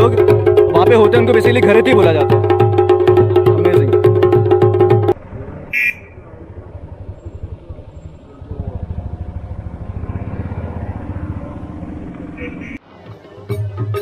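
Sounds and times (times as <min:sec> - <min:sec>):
folk band drums and held note: 0:00.0 - 0:05.2, 0:12.9 - 0:14.0
vehicle engine pulsing: 0:00.0 - 0:12.8.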